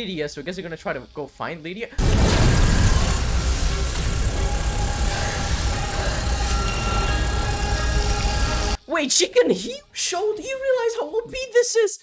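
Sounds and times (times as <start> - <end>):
deep rumble: 2.0 - 8.8
background music: 2.3 - 10.4.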